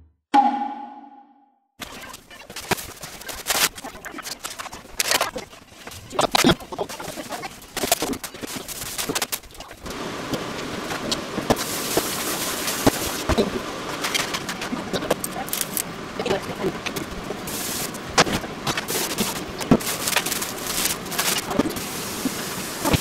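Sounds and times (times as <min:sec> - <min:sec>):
steady hiss: 0:05.8 - 0:23.0.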